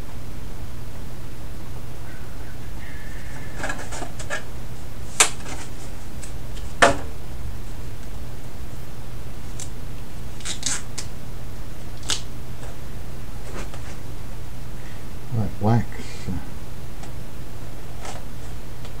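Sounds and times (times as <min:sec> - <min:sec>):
low hum: 0:00.0 - 0:19.0
scissors snipping: 0:10.4 - 0:11.1, 0:12.0 - 0:12.3.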